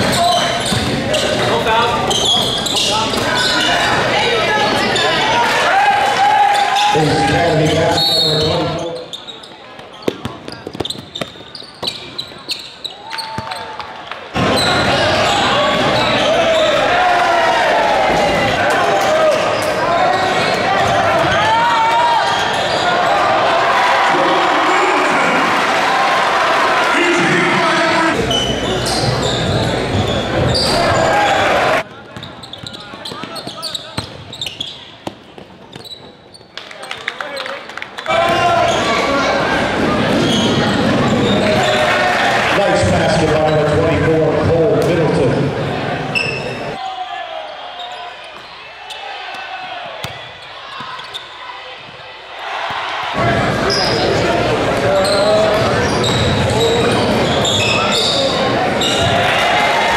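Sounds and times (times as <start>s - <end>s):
basketball bouncing on court: 0.1s - 1.2s, 9.8s - 12.3s, 32.1s - 34.4s
indistinct shouting voices: 14.4s - 28.3s.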